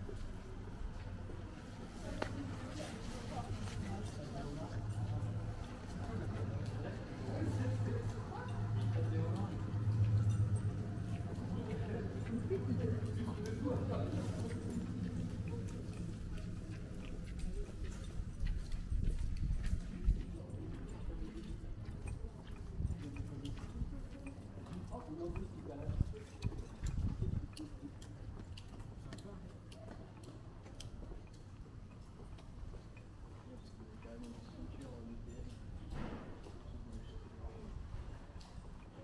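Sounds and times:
indistinct chatter: 0.0 - 39.0
low city rumble: 0.0 - 39.0
footsteps on wet pavement: 0.2 - 32.7.

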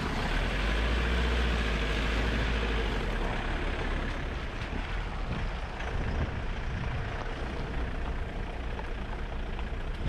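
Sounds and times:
vehicle driving on wet dirt trail: 0.0 - 10.0.

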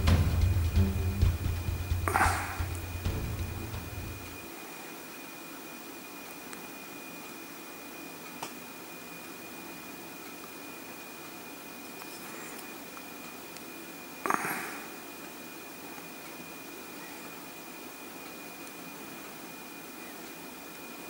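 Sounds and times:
room tone hiss: 0.0 - 21.0
thin high whine: 0.0 - 21.0.

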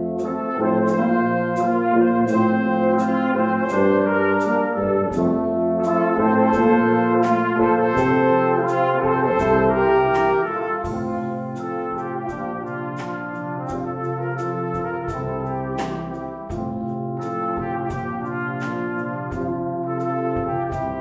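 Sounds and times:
brass band playing: 0.0 - 21.0
drum kit beat: 0.0 - 21.0.

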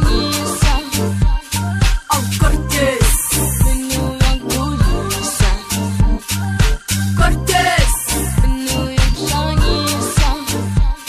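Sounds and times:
dance music with bass-heavy beat: 0.0 - 11.0.

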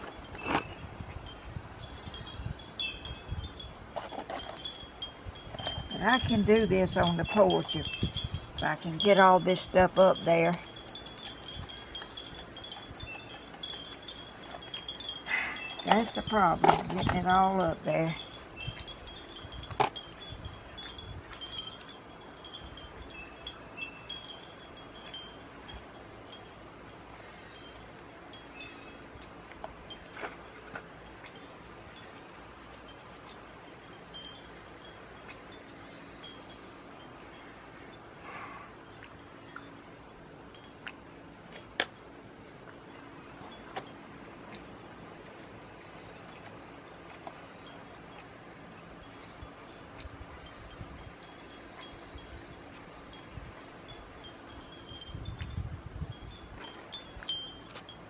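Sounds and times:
wind chimes tinkling: 0.0 - 41.4, 45.6 - 58.0.

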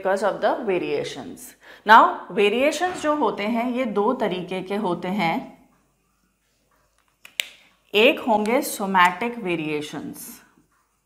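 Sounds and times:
marker stroke on whiteboard: 5.6 - 11.0.

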